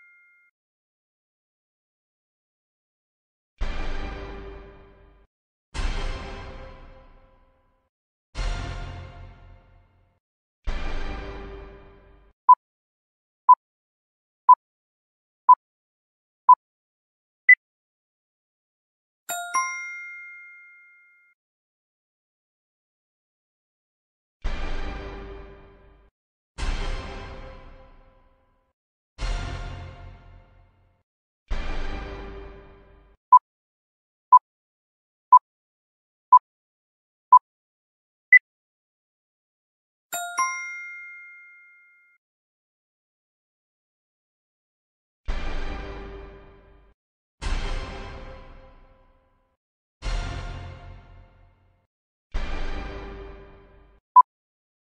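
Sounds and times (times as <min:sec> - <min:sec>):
two-note chime: 0:00.0 - 0:00.5, 0:19.3 - 0:21.3, 0:40.2 - 0:42.2.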